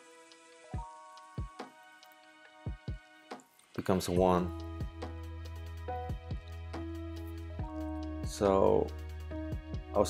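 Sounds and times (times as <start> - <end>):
kick drum beat: 2.7 - 3.0.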